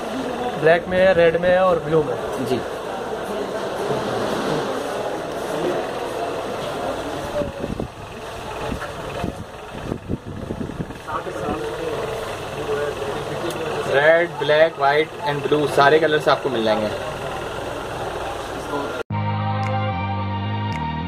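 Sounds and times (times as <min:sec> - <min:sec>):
steady low hum: 0:04.7 - 0:19.0.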